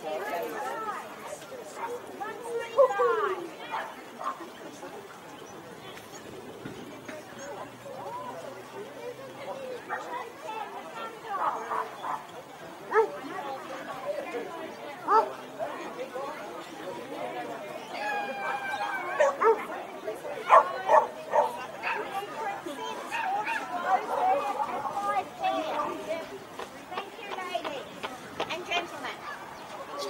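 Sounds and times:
people chatting: 0.0s - 30.0s
dog barking: 12.9s - 13.2s, 19.2s - 19.7s, 20.5s - 22.0s.

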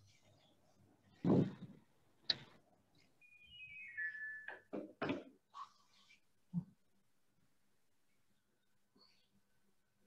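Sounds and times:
falling electronic beeps: 3.2s - 4.7s.

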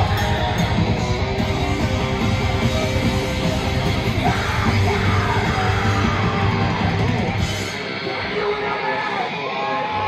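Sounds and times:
drums: 0.0s - 10.0s
electric guitar: 0.0s - 10.0s
vocalist yelling: 8.0s - 10.0s.

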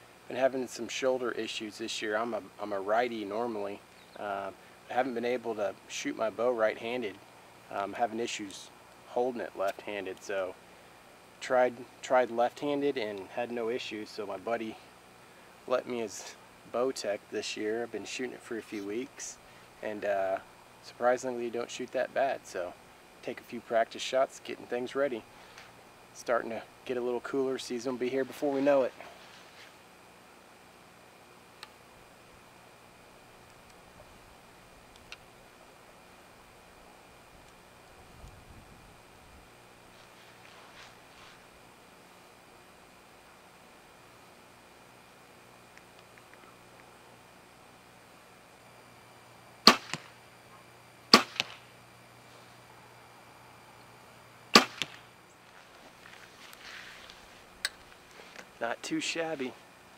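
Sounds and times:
arrow striking target: 49.6s - 50.2s, 51.1s - 51.7s, 54.6s - 55.1s.

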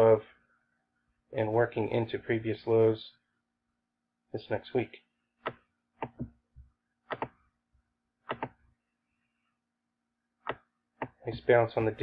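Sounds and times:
computer mouse clicks: 7.1s - 7.4s.

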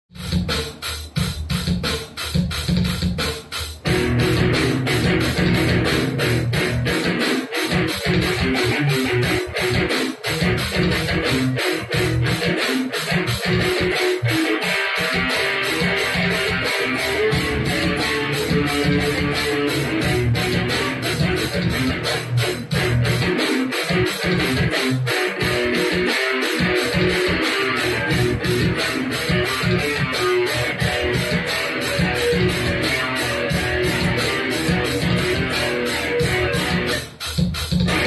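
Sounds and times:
fast beat: 0.1s - 38.0s
electric guitar music: 3.8s - 38.0s.

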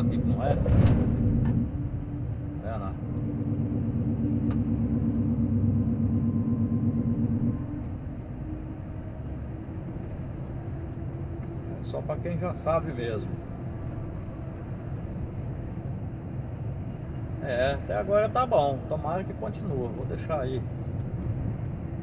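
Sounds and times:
diesel truck engine running: 0.0s - 22.0s
road noise: 0.0s - 22.0s.

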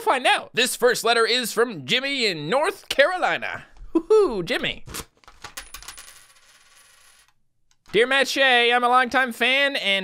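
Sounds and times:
coin clinking on a desk: 5.3s - 7.4s.

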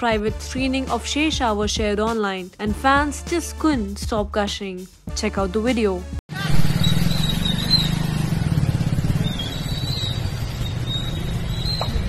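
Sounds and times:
vehicle engine idling: 6.4s - 12.0s.

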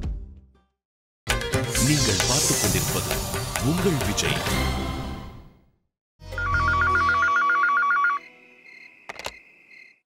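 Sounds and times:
telephone ringer warbling: 6.4s - 8.2s.

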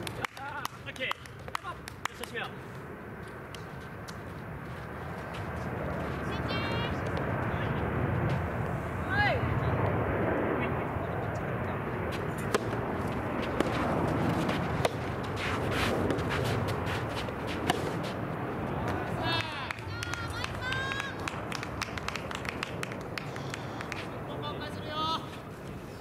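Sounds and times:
outdoor murmur: 0.2s - 26.0s
rackets hitting ball: 12.1s - 18.2s
people shouting: 18.8s - 21.2s.

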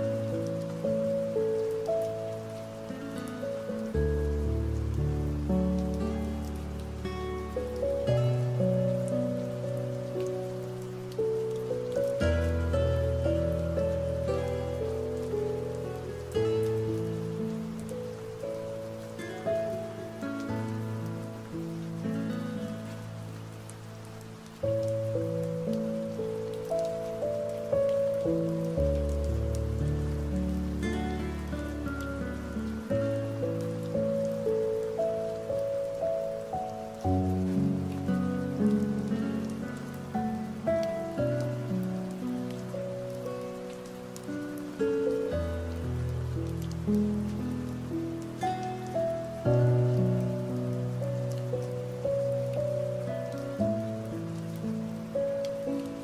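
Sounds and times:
soft instrumental sleep music: 0.0s - 56.0s
steady rain: 0.0s - 56.0s.

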